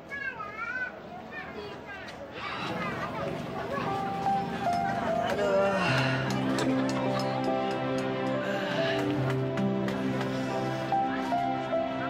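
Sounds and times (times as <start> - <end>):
background outdoor voices: 0.0 - 12.0.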